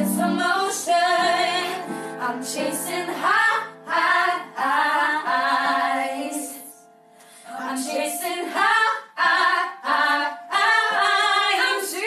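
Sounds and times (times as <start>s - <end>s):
women singing together: 0.0s - 6.8s, 7.5s - 12.0s.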